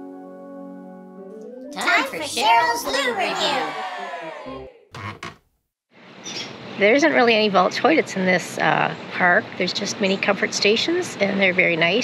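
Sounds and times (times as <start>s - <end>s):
woman speaking: 6.8s - 12.0s.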